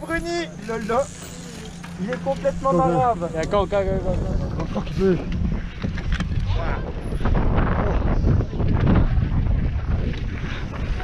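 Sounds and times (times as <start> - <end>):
steady low hum: 0.0 - 11.0
people talking: 2.0 - 5.3.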